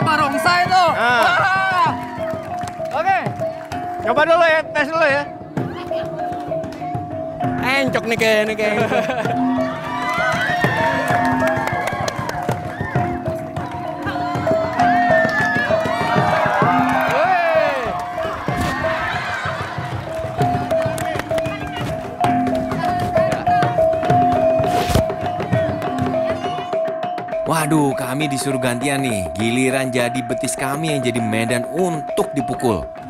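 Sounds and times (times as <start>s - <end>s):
traditional music with drums: 0.0s - 33.0s
onlookers shouting: 9.5s - 21.9s.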